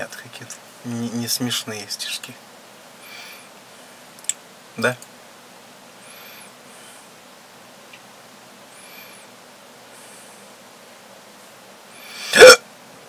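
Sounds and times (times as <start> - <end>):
man hiccuping: 12.3 - 12.6.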